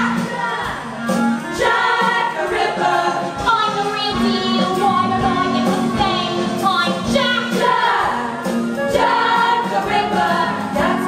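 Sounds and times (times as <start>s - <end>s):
group singing: 0.0s - 11.0s.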